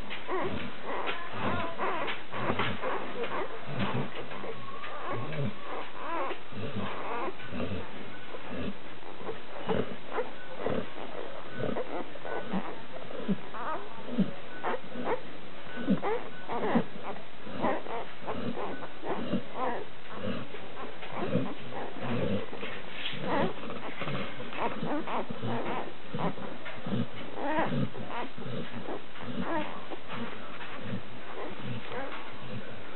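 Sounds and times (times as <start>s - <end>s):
puppies squeaking and suckling: 0.0s - 32.9s.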